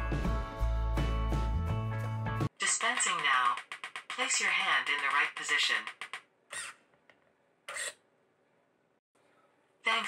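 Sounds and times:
servo buzzy rasp: 0:06.5 - 0:06.8, 0:07.7 - 0:08.0.

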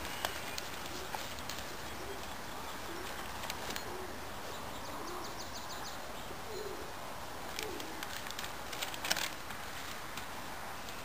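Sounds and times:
bird cooing: 0:00.0 - 0:04.2, 0:04.8 - 0:05.5, 0:06.3 - 0:08.1
background hiss: 0:00.0 - 0:11.0.

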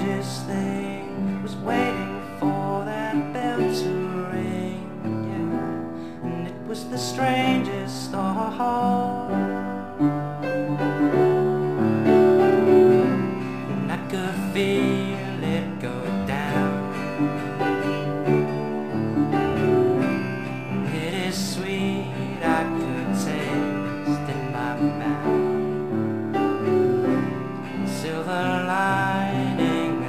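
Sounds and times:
classical guitar in band: 0:00.0 - 0:30.0.

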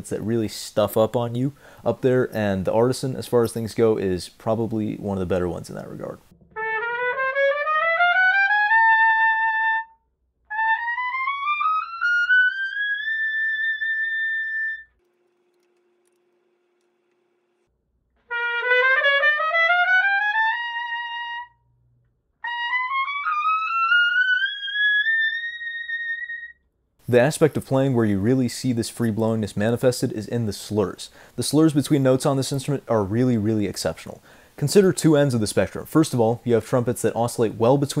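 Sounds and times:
piccolo trumpet playing rising runs: 0:06.5 - 0:09.9, 0:10.5 - 0:16.5, 0:18.3 - 0:21.6, 0:22.4 - 0:26.5.

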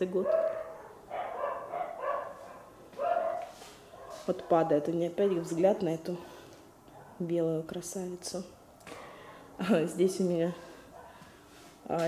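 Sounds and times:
dog barking high-pitched: 0:00.2 - 0:04.6.

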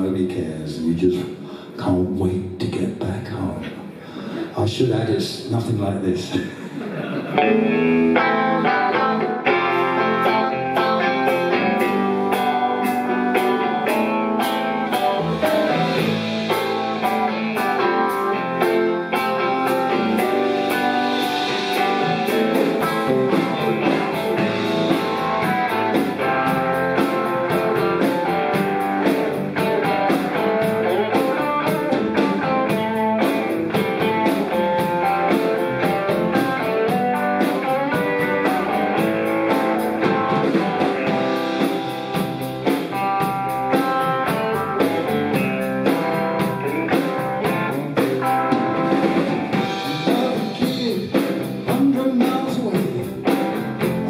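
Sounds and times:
electric blues band playing: 0:02.5 - 0:54.0
electric guitar: 0:06.6 - 0:54.0.

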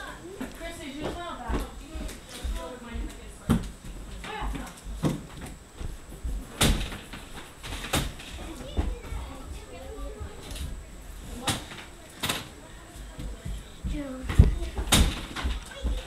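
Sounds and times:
people talking indistinctly: 0:08.3 - 0:16.0.

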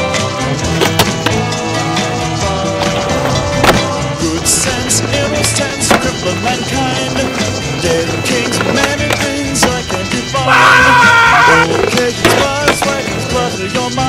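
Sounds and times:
music: 0:00.0 - 0:14.0
skateboard clacks: 0:00.0 - 0:14.0
skateboard wheels rolling: 0:00.0 - 0:14.0.

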